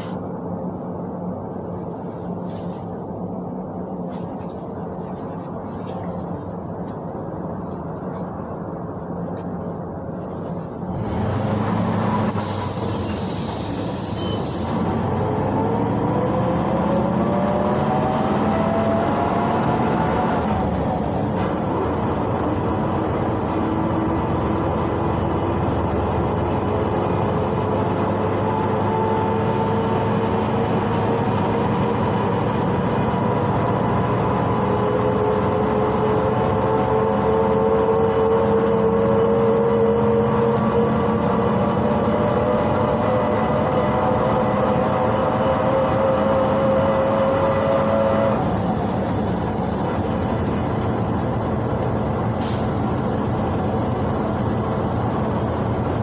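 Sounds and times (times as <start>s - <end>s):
bus engine rumble: 0.0s - 56.0s.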